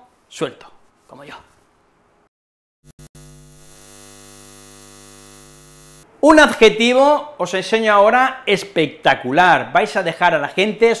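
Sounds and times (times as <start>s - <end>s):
electrical mains hum: 2.9s - 6.5s.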